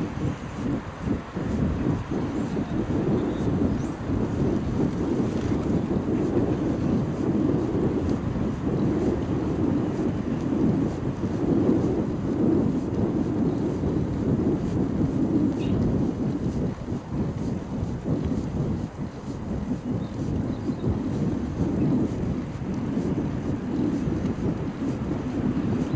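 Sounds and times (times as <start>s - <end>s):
bicycle road noise: 0.0s - 25.9s
wind buffeting microphone: 0.0s - 25.9s.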